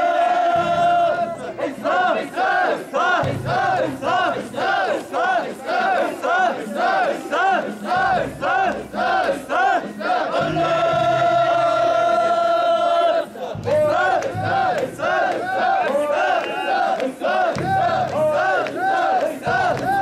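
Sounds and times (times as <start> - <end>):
group chanting in unison: 0.0 - 20.0.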